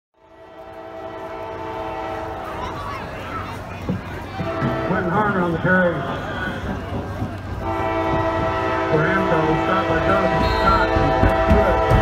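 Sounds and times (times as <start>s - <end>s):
locomotive air horn: 0.2s - 2.8s, 4.4s - 6.6s, 7.6s - 12.0s
announcer speaking over loudspeaker: 4.4s - 6.8s, 8.5s - 12.0s.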